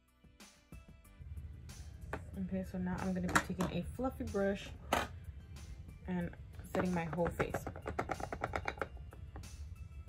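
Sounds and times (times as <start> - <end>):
background music: 0.0 - 10.0
makeup brush tapping in jar: 6.7 - 9.5.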